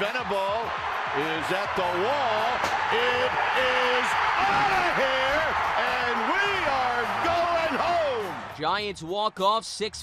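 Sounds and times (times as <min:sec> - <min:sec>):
crowd cheering loudly: 0:00.0 - 0:09.6
people shouting: 0:02.8 - 0:08.4.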